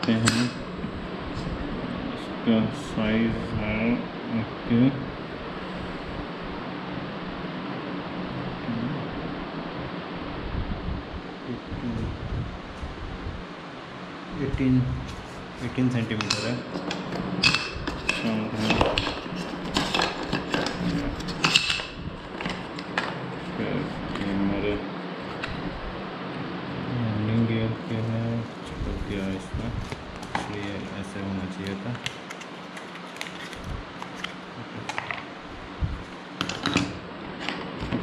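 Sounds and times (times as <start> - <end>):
parts clicking and rustling: 16.2 - 23.2.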